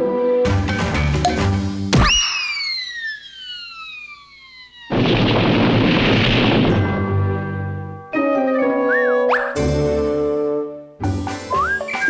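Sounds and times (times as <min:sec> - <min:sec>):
long descending whistle: 0:02.1 - 0:04.9, 0:08.7 - 0:09.6
loud noisy crash: 0:04.9 - 0:07.1.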